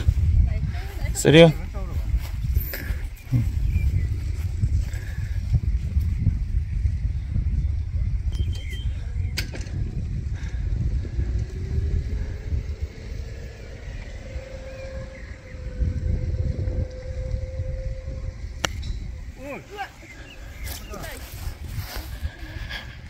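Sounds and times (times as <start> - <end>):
faint steady drone: 0.0 - 23.0
wind buffeting microphone: 0.0 - 23.0.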